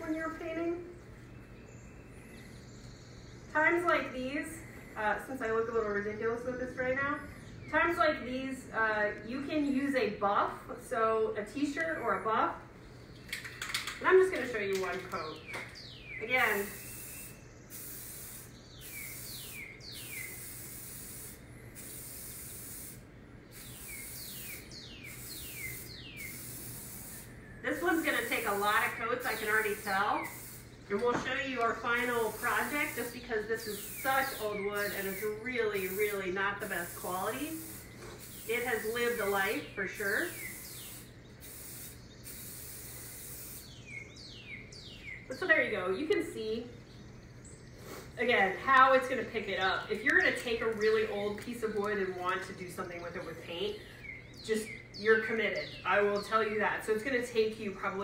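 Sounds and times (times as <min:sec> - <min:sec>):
bird chirps: 0:01.0 - 0:03.6, 0:14.4 - 0:20.8, 0:23.4 - 0:37.0, 0:37.6 - 0:48.0, 0:52.8 - 0:56.5
spray can hissing: 0:16.4 - 0:30.8, 0:31.4 - 0:43.8.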